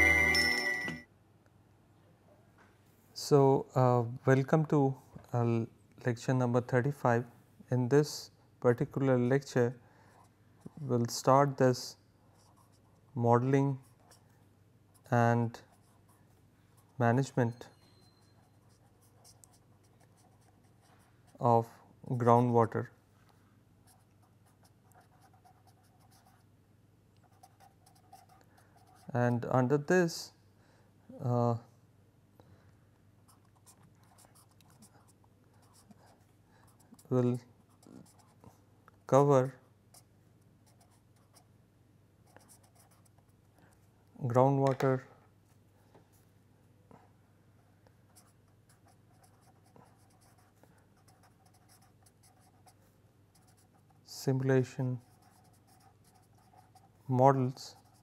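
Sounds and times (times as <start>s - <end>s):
pen scratching on paper: 12.3s - 13.0s, 18.2s - 21.4s, 23.9s - 26.4s, 27.2s - 29.1s, 33.3s - 38.5s, 39.9s - 41.4s, 42.3s - 43.3s, 48.1s - 54.0s, 55.0s - 57.1s, 57.7s - 58.0s.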